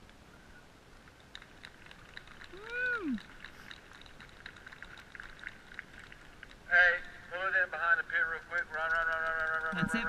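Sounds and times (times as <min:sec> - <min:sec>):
faint scattered clicks: 0:00.9 - 0:10.0.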